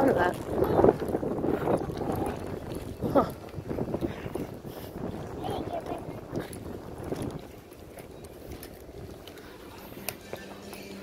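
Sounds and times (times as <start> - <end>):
street noise: 0.0 - 11.0
wind noise on microphone: 0.0 - 11.0.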